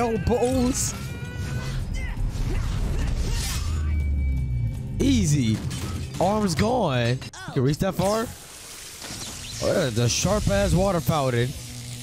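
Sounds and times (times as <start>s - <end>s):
low rumbling score: 1.8s - 6.9s.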